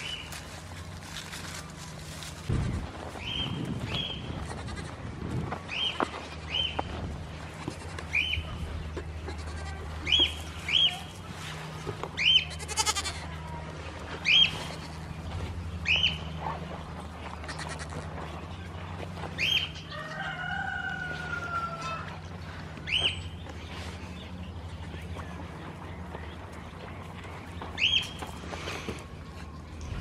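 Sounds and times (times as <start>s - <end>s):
goat kids bleating: 4.1s - 5.1s, 7.5s - 11.2s, 12.2s - 13.5s, 14.2s - 15.4s, 17.3s - 18.3s.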